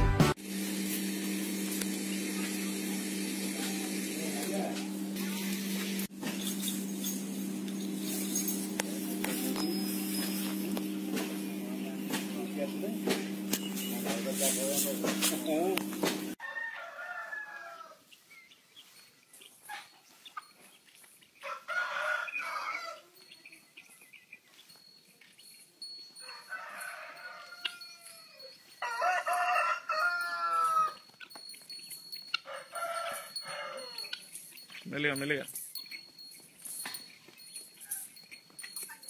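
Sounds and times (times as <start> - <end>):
rooster crowing: 16.4 - 18.1, 21.4 - 23.1, 26.2 - 31.0, 32.4 - 34.2.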